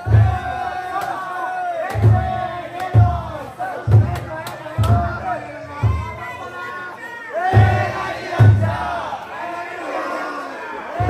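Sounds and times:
deep drum beat: 0.0s - 0.7s, 1.9s - 6.3s, 7.5s - 9.0s
crowd chanting in unison: 0.0s - 11.0s.

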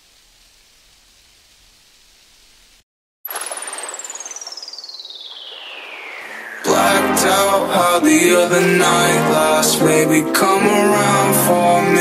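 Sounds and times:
falling electronic whistle tone: 3.3s - 8.4s
wash of noise: 3.3s - 12.0s
lofi beat: 6.6s - 12.0s.

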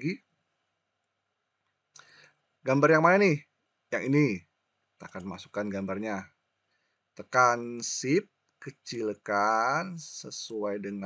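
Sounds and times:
man speaking: 0.0s - 0.2s, 2.7s - 3.4s, 4.0s - 4.4s, 5.0s - 6.3s, 7.2s - 11.0s.

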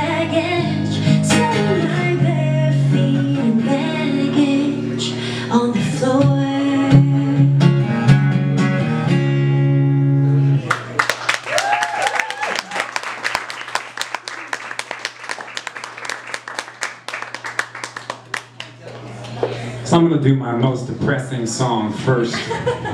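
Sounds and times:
acoustic guitar and band playing: 0.0s - 11.0s
audience applauding: 10.6s - 19.4s
person cheering: 11.4s - 13.0s.

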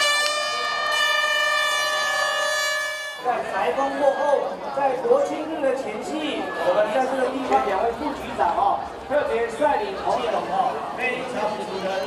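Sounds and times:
air horn blast: 0.0s - 3.4s.

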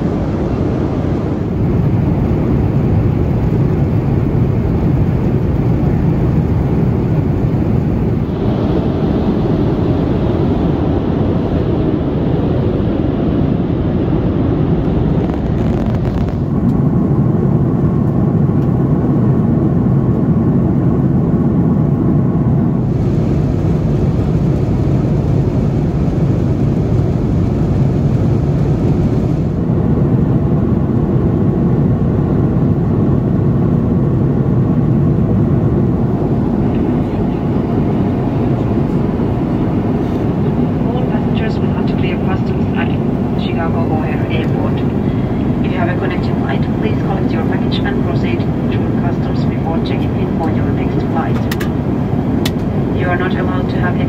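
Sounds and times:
airplane cabin rumble: 0.0s - 54.0s.

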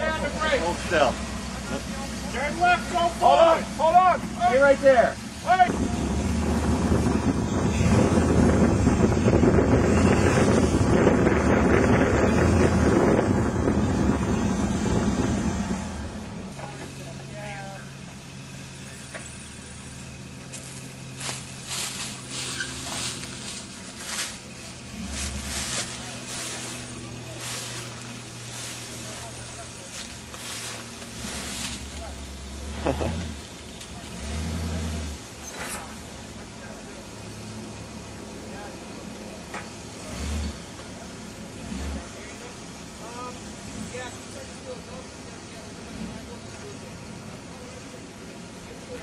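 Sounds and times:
off-road vehicle engine working: 0.0s - 49.0s.

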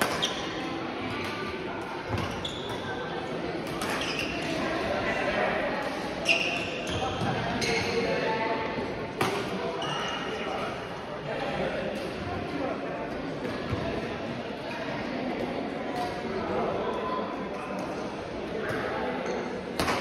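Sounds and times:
racket hitting shuttlecock: 19.8s - 20.0s.

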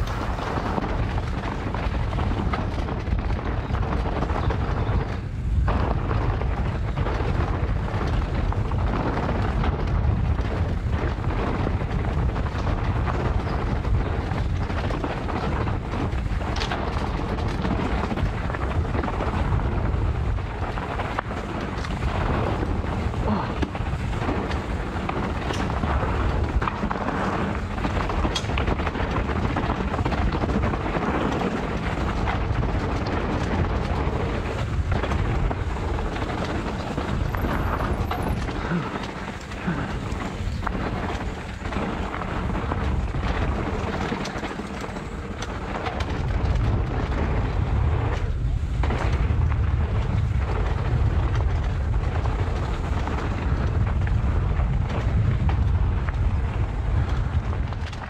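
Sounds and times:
bike rattling over bumps: 0.0s - 58.0s
bike tyres rolling on gravel: 0.0s - 58.0s
wind on microphone: 0.0s - 58.0s.

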